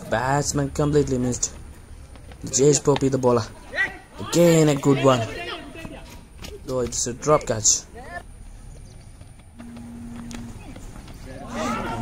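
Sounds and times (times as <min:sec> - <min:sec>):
players calling out: 0:00.0 - 0:08.8, 0:09.5 - 0:12.0
steady hum: 0:08.3 - 0:12.0.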